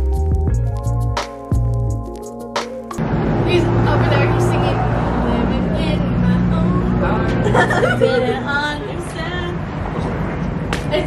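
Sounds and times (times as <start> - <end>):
road traffic noise: 2.8 - 11.0
vehicle engine low hum: 3.0 - 11.0.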